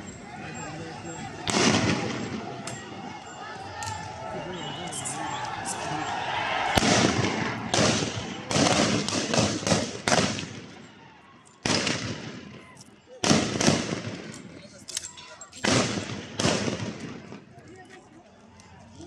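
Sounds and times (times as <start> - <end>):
sharp gunshots ringing: 1.4 - 2.9, 6.6 - 10.8, 11.6 - 12.5, 13.2 - 14.5, 15.6 - 17.3.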